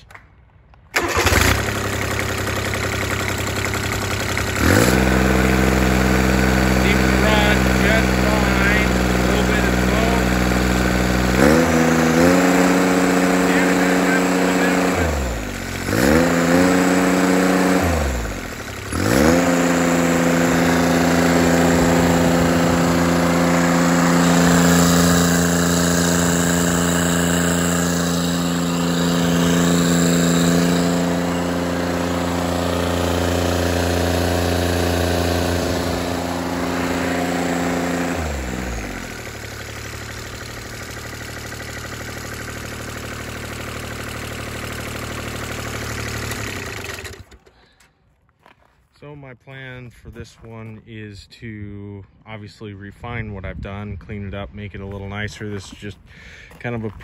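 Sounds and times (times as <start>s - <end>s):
diesel engine revving: 0.9s - 47.8s.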